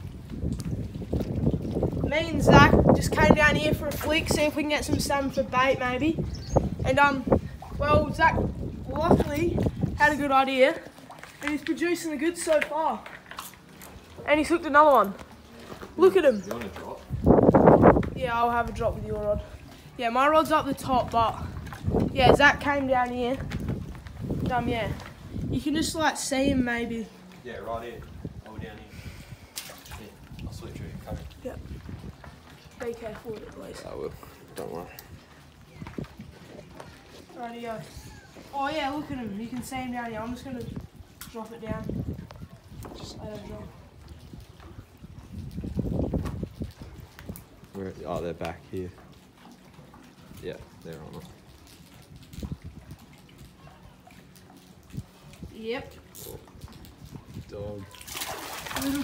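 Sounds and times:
wind rumbling on microphone: 0.0 - 13.0, 14.0 - 49.1, 49.8 - 59.0
water lapping faintly: 0.0 - 59.0.

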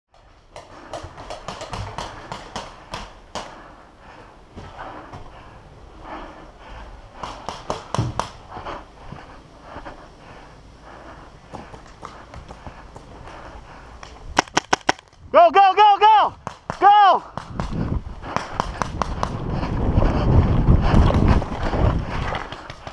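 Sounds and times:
paintball markers firing: 0.6 - 3.6, 14.4 - 15.2, 16.4 - 19.4.

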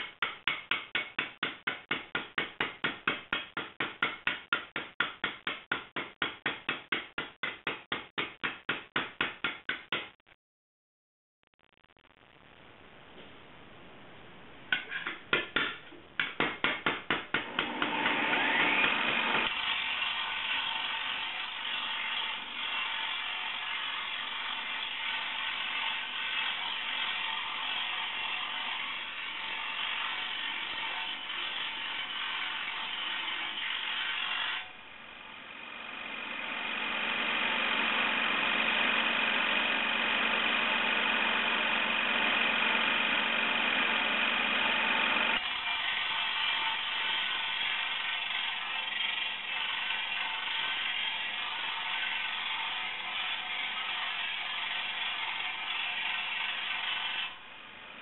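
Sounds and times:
angle grinder grinding steel: 17.5 - 34.7, 35.3 - 57.4.

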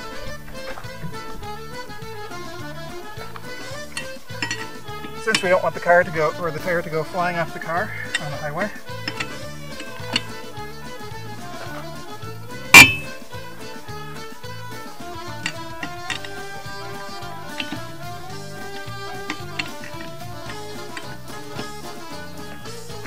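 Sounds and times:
background music: 0.0 - 23.0
lug wrench clanking on wheel: 0.0 - 23.0.

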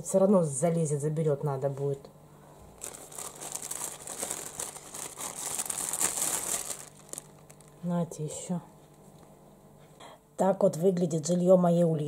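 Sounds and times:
lettuce crinkling and tearing: 2.8 - 7.8.

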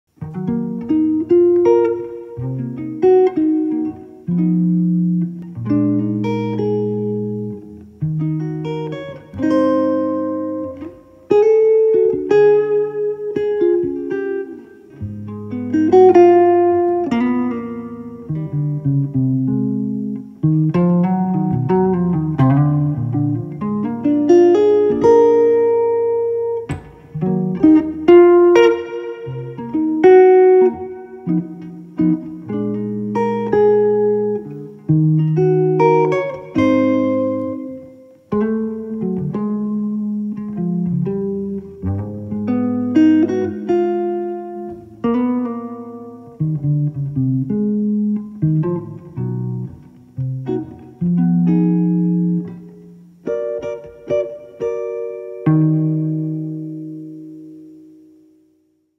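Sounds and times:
electric guitar chords and melody: 0.1 - 58.9.

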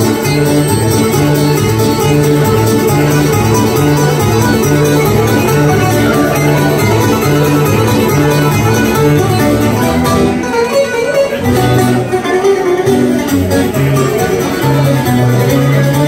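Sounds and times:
acoustic guitar accompaniment: 0.0 - 16.0
bouzouki melody: 0.0 - 16.0.

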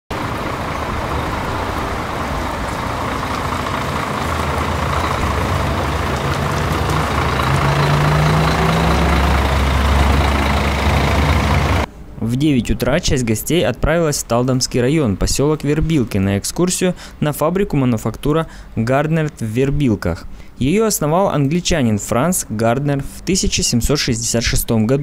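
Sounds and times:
bus engine humming: 0.1 - 12.6.

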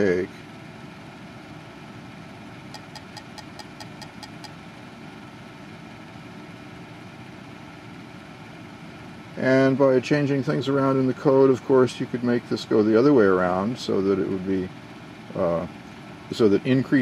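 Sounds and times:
low background hum and hiss: 0.0 - 17.0.

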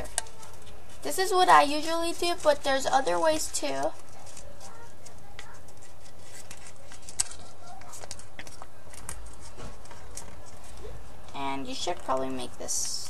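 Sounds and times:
paper folding and crinkling: 0.0 - 13.0.

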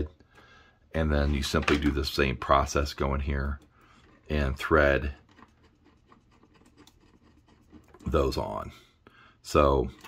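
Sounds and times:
faint scratching and ticks of connectors: 2.8 - 8.6.

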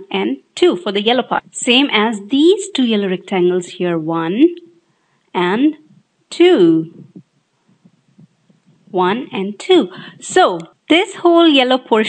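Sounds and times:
narrator speaking: 0.0 - 4.7, 5.4 - 7.2, 8.8 - 12.0
faint low ticks and rumbles: 4.5 - 9.0.

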